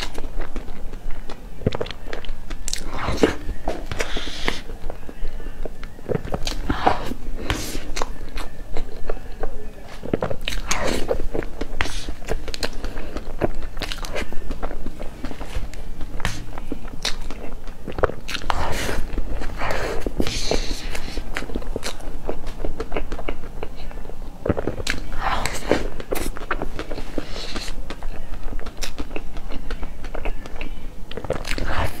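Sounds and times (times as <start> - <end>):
person chewing wetly: 0.0 - 32.0.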